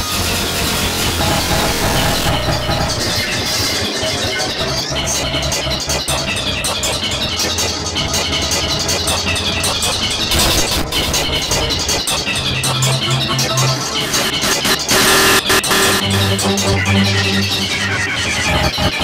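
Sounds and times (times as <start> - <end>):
distorted noisy music: 0.0 - 19.0
low rumble: 0.6 - 3.9.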